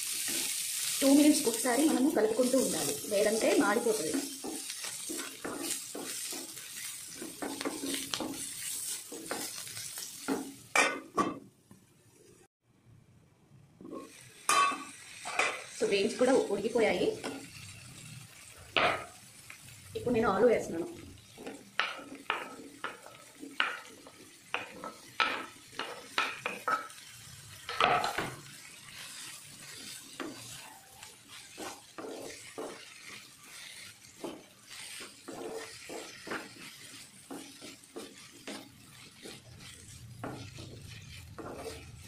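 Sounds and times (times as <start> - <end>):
spatula scraping a pan: 0.0 - 11.2, 17.0 - 19.5, 21.2 - 42.0
light sizzle: 0.0 - 42.0.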